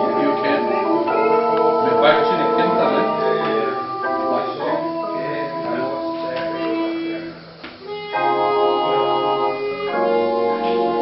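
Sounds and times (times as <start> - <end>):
chromatic harmonica melody: 0.0 - 11.0
electronic keyboard chords: 0.0 - 11.0.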